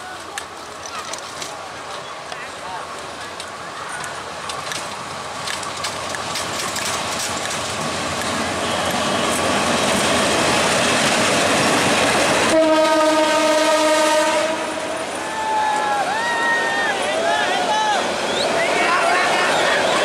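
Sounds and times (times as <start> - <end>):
train passing on rails: 0.0 - 20.0
locomotive horn blast: 12.5 - 14.9.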